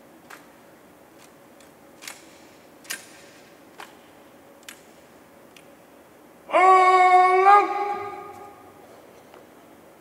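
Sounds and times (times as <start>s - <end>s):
soldier shouting drill command: 6.5s - 8.6s.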